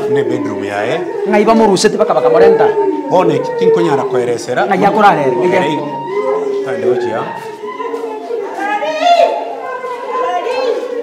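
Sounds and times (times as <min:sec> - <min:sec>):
people talking overlapping: 0:00.0 - 0:11.0.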